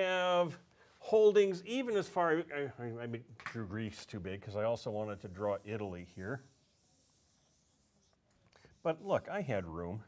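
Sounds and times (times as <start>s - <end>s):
marker scratching on whiteboard: 5.0s - 9.7s.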